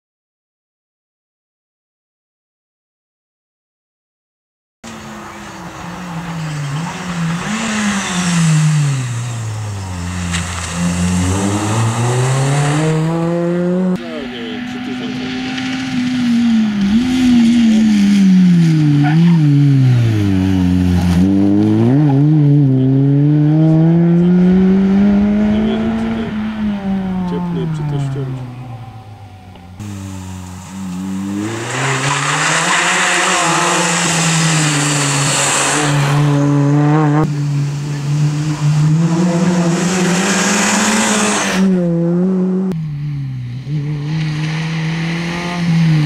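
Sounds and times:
rally car engine accelerating: 0:04.8 - 0:46.0.

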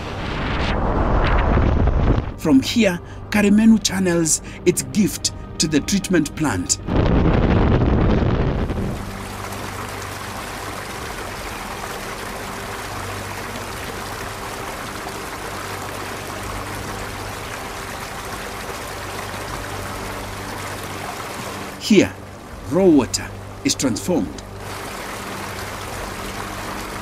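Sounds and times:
low rumble: 0:00.0 - 0:02.4, 0:06.8 - 0:09.6
flowing water rushing: 0:06.8 - 0:27.0.

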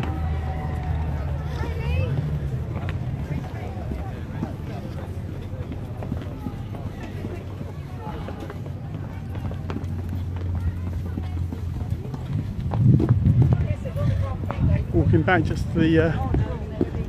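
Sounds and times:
footsteps: 0:00.0 - 0:17.0.

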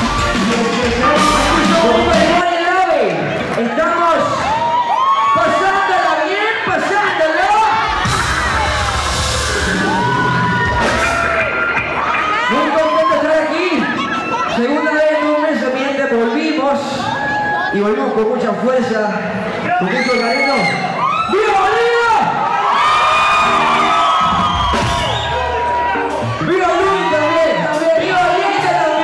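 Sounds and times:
dance music with heavy bass: 0:00.0 - 0:02.4
live band playing chords: 0:00.0 - 0:03.6, 0:06.7 - 0:14.6, 0:22.2 - 0:29.0
crowd whooping and shouting: 0:00.0 - 0:18.6, 0:19.4 - 0:29.0.

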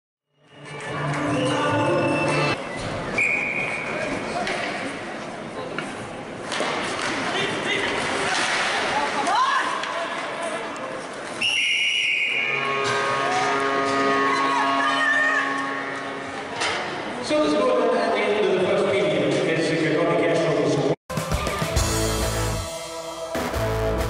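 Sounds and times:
arena music: 0:00.5 - 0:02.6, 0:21.1 - 0:24.0
rink and spectator noise: 0:00.5 - 0:19.8
referee whistle blasts: 0:11.4 - 0:15.0.

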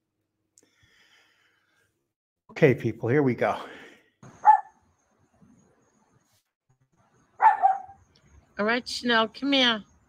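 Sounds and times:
small dog barking: 0:04.4 - 0:04.7, 0:07.4 - 0:08.0.

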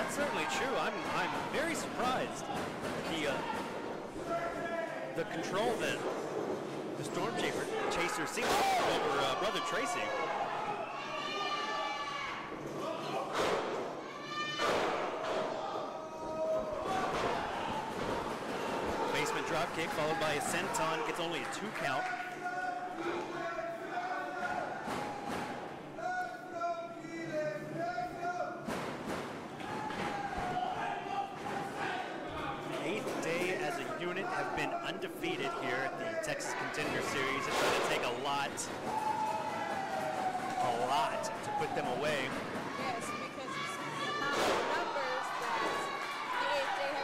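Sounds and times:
voices shouting in large hall: 0:00.0 - 0:06.4, 0:07.0 - 0:47.0.

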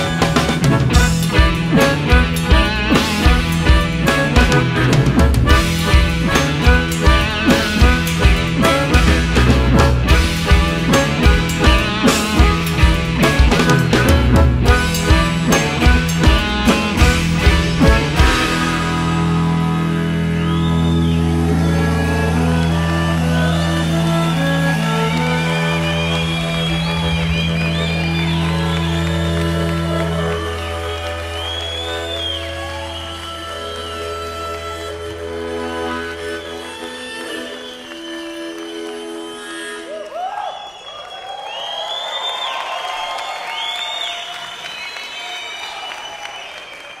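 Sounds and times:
live band closing chord: 0:00.0 - 0:39.8
harmonica: 0:00.0 - 0:41.1
audience cheering and whistling: 0:00.0 - 0:47.0.

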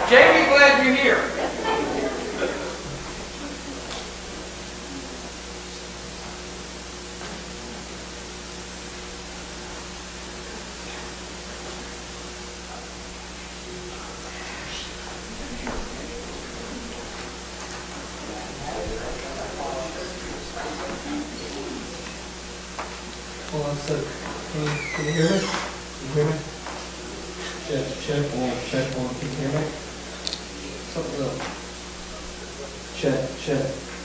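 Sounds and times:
faint murmurs: 0:00.0 - 0:08.2, 0:09.2 - 0:34.0
sound system hum and hiss: 0:00.0 - 0:34.0.

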